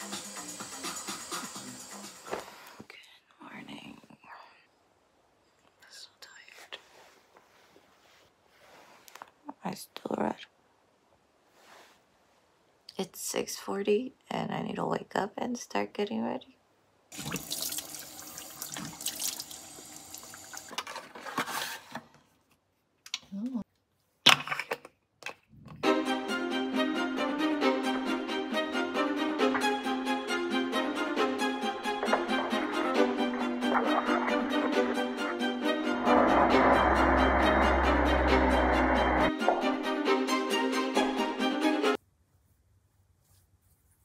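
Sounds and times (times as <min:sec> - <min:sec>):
woman whispering: 0:02.9 - 0:04.7, 0:05.7 - 0:06.9
water splashing on face: 0:17.1 - 0:20.7, 0:32.0 - 0:35.6
tap water running into basin: 0:17.1 - 0:20.8, 0:31.3 - 0:36.1.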